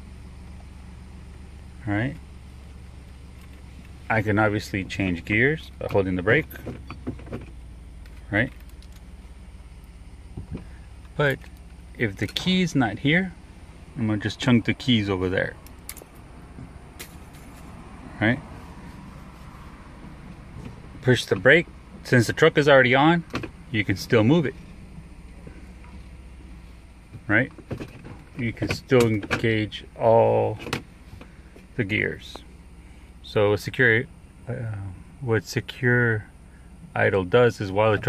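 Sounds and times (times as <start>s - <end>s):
pickup engine idling: 0.0s - 38.0s.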